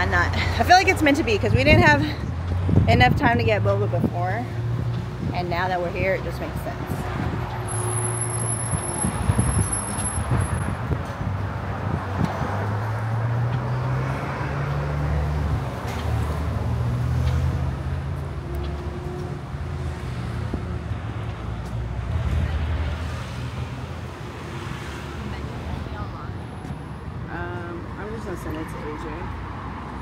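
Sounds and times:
cars passing: 0:00.0 - 0:30.0.

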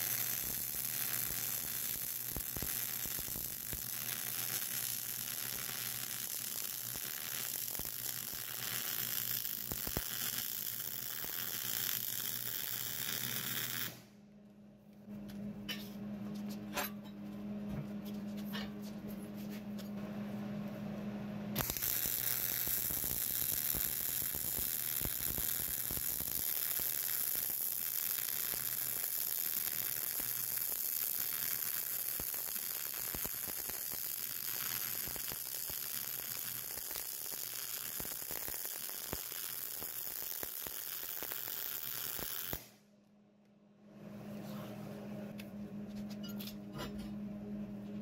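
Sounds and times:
welding arc crackling sizzle: 0:00.0 - 0:14.0, 0:21.6 - 0:42.8.

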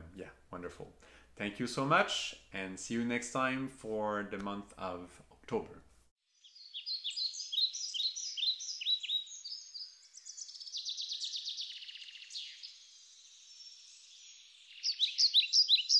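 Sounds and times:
songbirds chirping and singing: 0:06.4 - 0:15.9.

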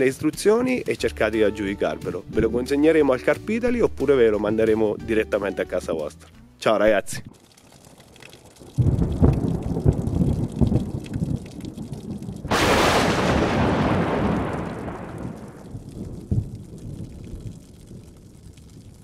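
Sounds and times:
thunder rumbling: 0:08.6 - 0:19.0
thunder crack: 0:08.8 - 0:19.0.

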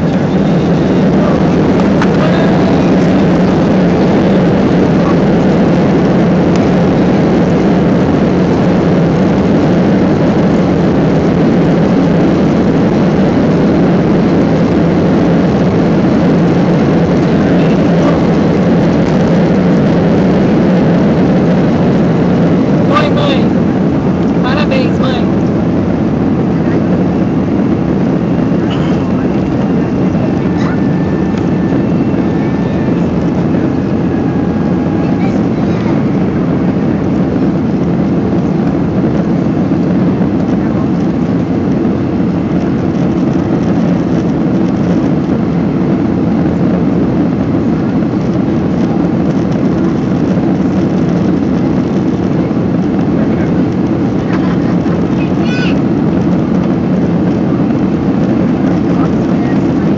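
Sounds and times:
faint steady whine: 0:00.0 - 0:59.9
jet engines rumbling: 0:00.0 - 0:59.9.

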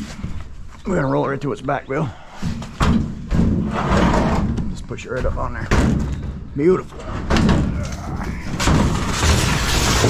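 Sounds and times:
sheet metal sliding on metal: 0:03.6 - 0:04.6, 0:08.8 - 0:10.0.

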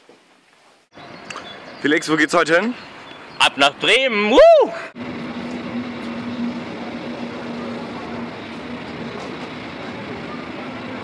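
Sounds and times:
low steady hum: 0:04.4 - 0:11.0
murmur of travellers: 0:05.0 - 0:11.0.

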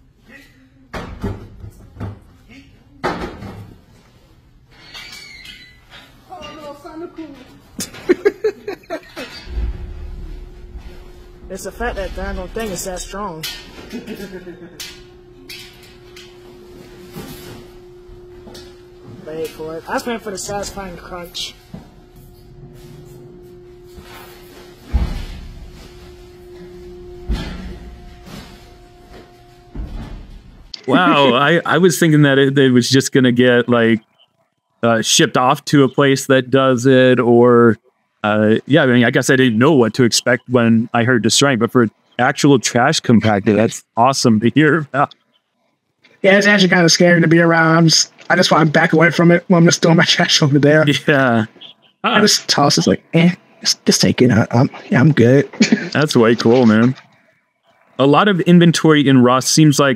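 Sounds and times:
motor humming: 0:07.8 - 0:30.0
steel door shutting: 0:09.1 - 0:16.4.

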